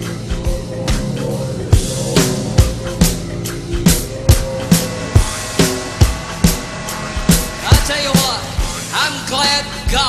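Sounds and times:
held synth tones: 0.0s - 8.9s
warbling gliding sound effects: 0.4s - 8.5s.

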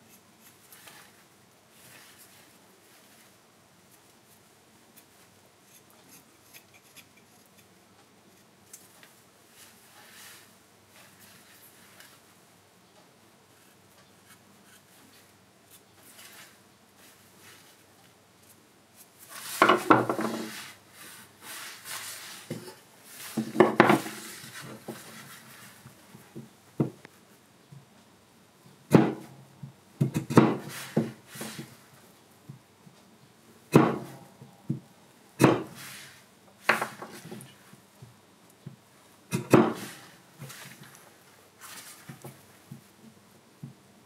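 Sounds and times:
rough wood scraping: 19.2s - 25.8s.

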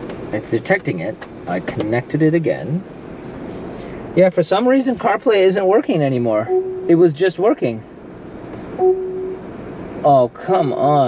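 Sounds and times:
short electronic beep: 6.5s - 7.0s, 8.8s - 9.5s.

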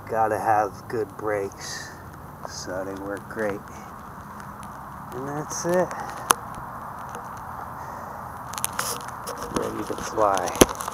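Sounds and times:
low background noise: 0.0s - 10.9s.

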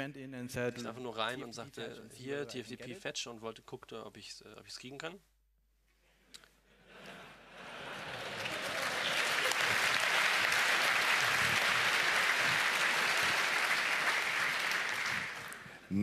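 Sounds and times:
audience applauding: 7.5s - 15.8s.

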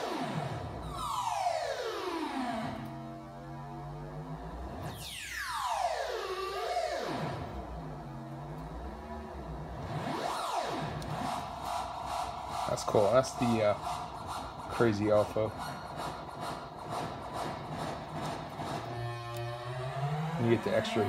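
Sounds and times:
low synth drone: 0.0s - 21.0s
synthesizer sweeps: 0.0s - 21.0s.

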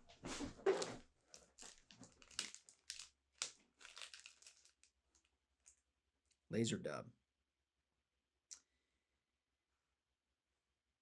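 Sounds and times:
packet crinkling and rustling: 0.6s - 5.8s.

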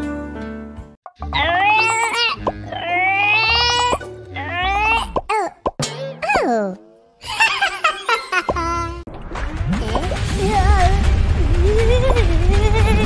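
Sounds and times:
high-pitched cartoon cries: 1.3s - 5.6s.

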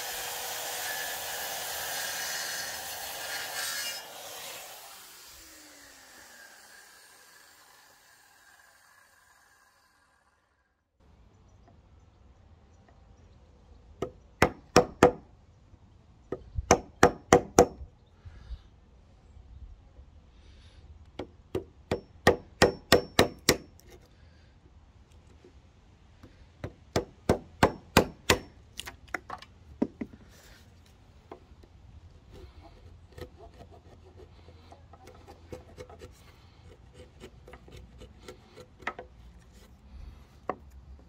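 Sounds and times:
hammer striking chisel into wood: 14.4s - 15.2s, 21.6s - 23.7s, 26.6s - 28.5s
chisel scraping wood: 32.2s - 40.8s.

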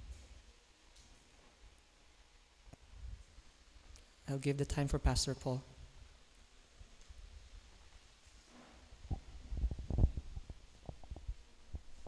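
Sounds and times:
microphone handling thumps: 8.9s - 12.0s.

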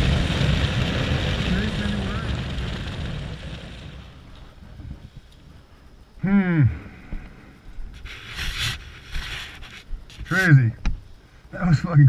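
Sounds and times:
rushes of noise: 0.0s - 10.5s.

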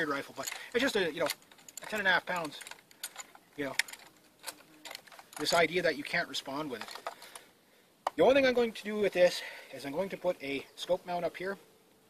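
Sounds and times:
man speaking: 0.0s - 2.7s, 3.6s - 3.8s, 5.4s - 6.9s, 8.1s - 11.6s
rifle metallic clicks and rattles: 0.0s - 5.8s, 6.6s - 8.2s.

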